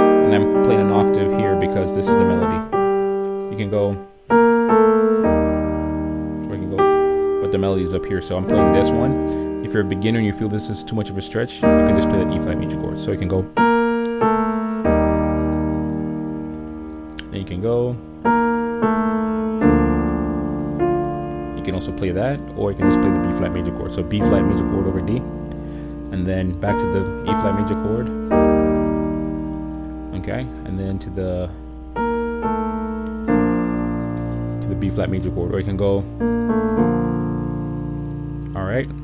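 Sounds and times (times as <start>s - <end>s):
piano chords ringing: 0.0s - 39.0s.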